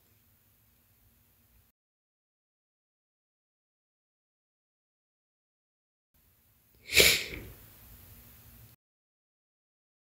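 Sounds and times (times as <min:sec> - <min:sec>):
woman sneezing: 0:06.8 - 0:07.5.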